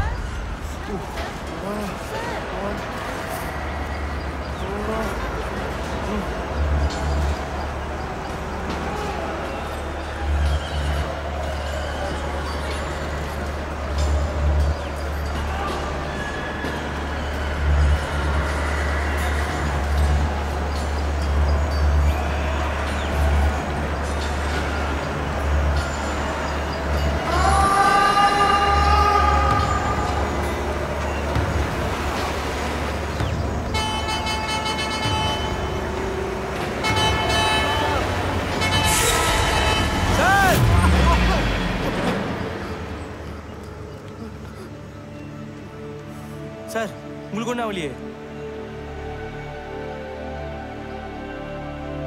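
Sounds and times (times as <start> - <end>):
vehicle horn: 33.7 - 42.8.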